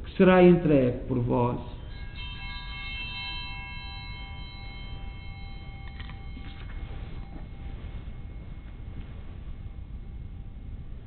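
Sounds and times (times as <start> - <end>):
altar bell ringing: 1.5 - 11.0.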